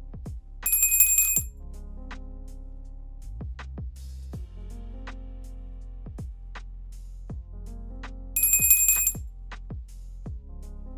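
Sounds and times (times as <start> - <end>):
music with steady beat: 0.0 - 10.9
high notification bell ring: 0.7 - 1.5, 8.4 - 9.2.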